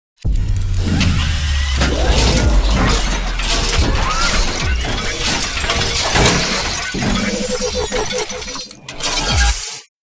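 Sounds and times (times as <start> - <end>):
noisy crashing with sharp hits: 0.3 - 7.4
rapid repeating ringing tone: 3.3 - 8.8.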